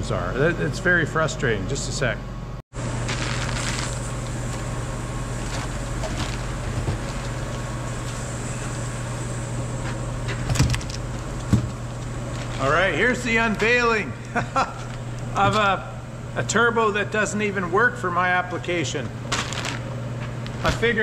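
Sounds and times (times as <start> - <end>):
low mechanical hum: 0.0 - 21.0.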